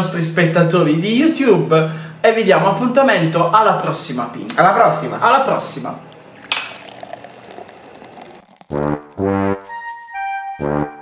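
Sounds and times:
theme music with brass note: 8.8 - 11.0.

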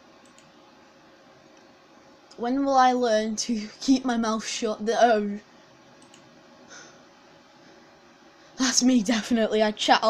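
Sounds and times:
faint steady hum: 0.0 - 10.0
low room hiss: 0.0 - 10.0
computer mouse clicks: 0.2 - 0.6, 6.0 - 6.3.

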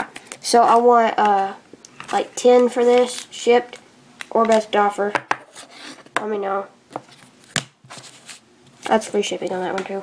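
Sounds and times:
faint rustles and scrapes: 7.0 - 9.4.

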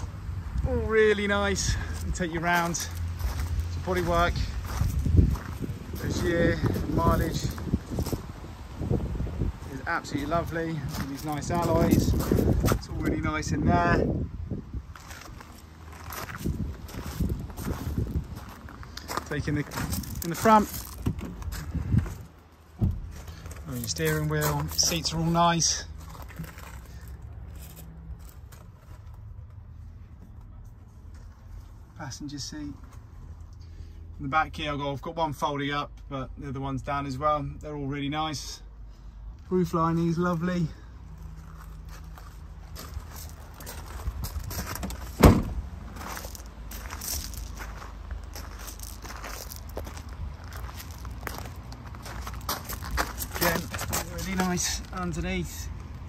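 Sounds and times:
steady low rumble: 0.0 - 34.4
footsteps crunching on gravel: 1.6 - 8.4, 9.6 - 13.2, 14.9 - 29.3, 41.1 - 56.0
loud sharp thump: 45.2 - 45.6.

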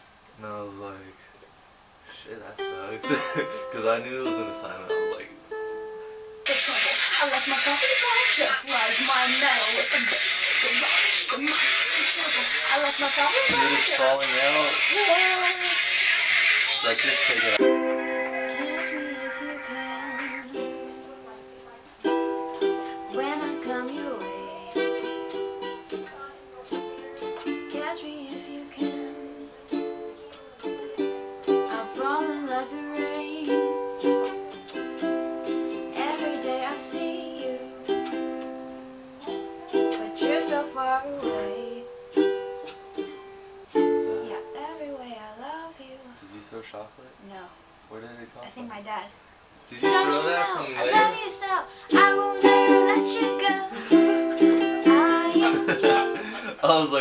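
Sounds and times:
ukulele strumming chords: 2.6 - 7.0, 13.1 - 15.5, 17.3 - 19.8, 20.4 - 44.8, 49.8 - 57.0.

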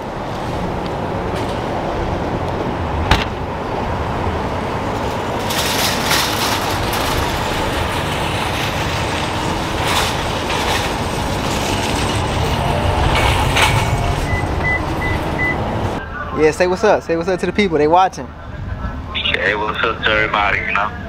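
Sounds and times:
shopping cart wheels rattling: 4.9 - 15.6.

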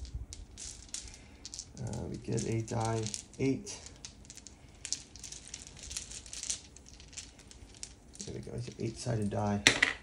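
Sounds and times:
dice rattling in cloth bag: 0.0 - 9.8.

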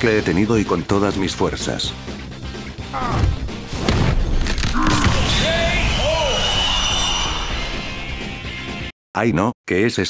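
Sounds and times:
background music: 0.0 - 8.9.

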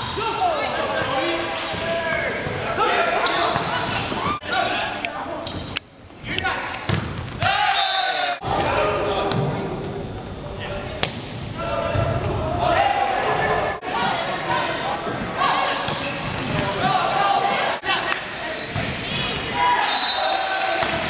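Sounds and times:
people shouting in a gym: 0.0 - 4.7, 7.4 - 9.6, 11.6 - 21.0.

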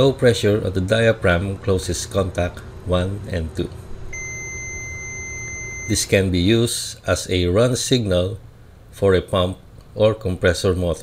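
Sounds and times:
multimeter continuity beep: 4.1 - 6.2.

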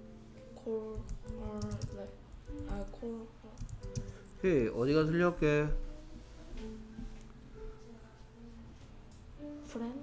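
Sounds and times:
background music: 0.0 - 10.0
keyboard keystroke clicks: 3.6 - 4.1.

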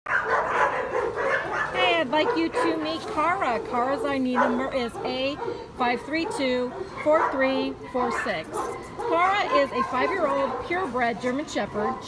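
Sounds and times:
dogs barking: 0.1 - 12.0
people's voices: 1.7 - 12.0.

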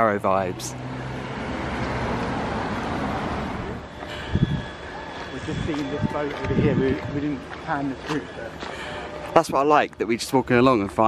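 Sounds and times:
passing car rush: 0.0 - 9.4.

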